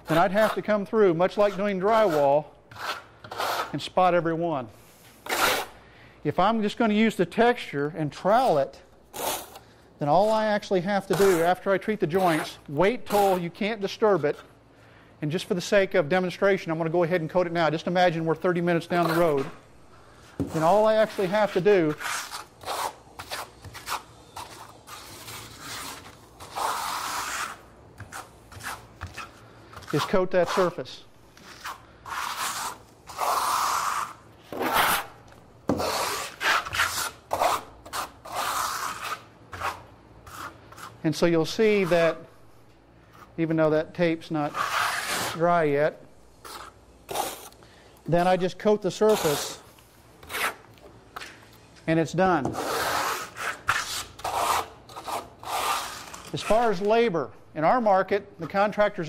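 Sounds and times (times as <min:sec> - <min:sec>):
person speaking: 0:00.1 - 0:02.5, 0:10.0 - 0:14.4, 0:15.2 - 0:19.6, 0:20.4 - 0:22.1, 0:29.9 - 0:31.1, 0:48.0 - 0:49.7, 0:51.8 - 0:52.7, 0:56.3 - 0:59.0
trowel scraping coating: 0:00.1 - 0:03.9, 0:05.1 - 0:05.8, 0:08.5 - 0:13.5, 0:18.8 - 0:19.6, 0:20.4 - 0:30.8, 0:31.4 - 0:35.1, 0:35.7 - 0:42.2, 0:44.4 - 0:45.4, 0:46.4 - 0:47.6, 0:48.9 - 0:50.6, 0:52.4 - 0:56.9.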